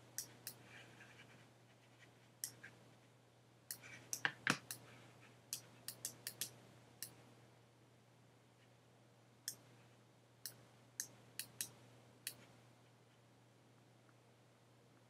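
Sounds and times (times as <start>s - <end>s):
faint low hum: 0.0s - 15.0s
computer mouse clicks: 5.5s - 7.2s.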